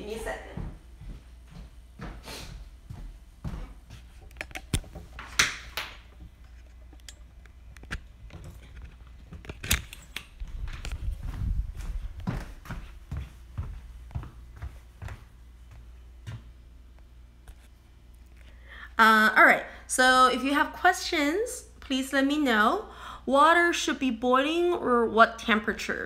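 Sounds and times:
low rumble: 10.4s - 12.6s.

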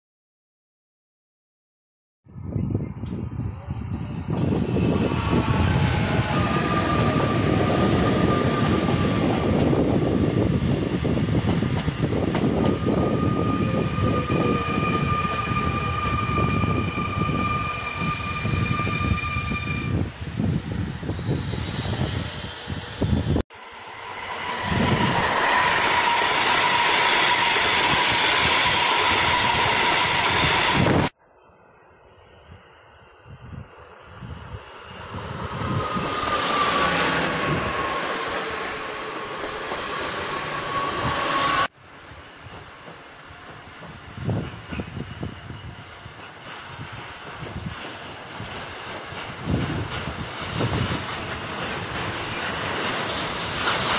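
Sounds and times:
train high whine: 3.2s - 53.9s
train approaching: 3.5s - 53.9s.

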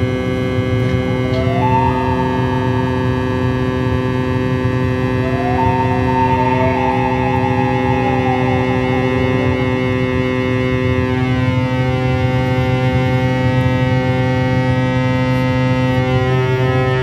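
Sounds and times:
electronic drone music: 0.0s - 17.0s.

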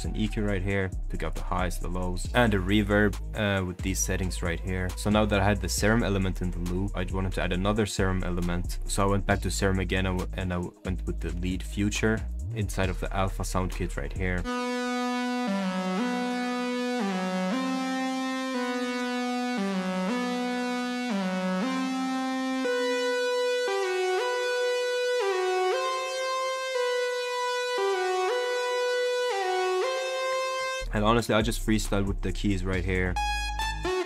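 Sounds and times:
synth lead melody: 14.4s - 31.0s, 33.1s - 34.0s.

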